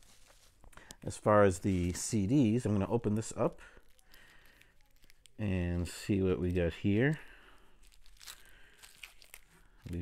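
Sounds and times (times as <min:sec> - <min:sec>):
plastic wrap crinkling and tearing: 0:00.0 - 0:10.0
small crackles: 0:00.0 - 0:10.0.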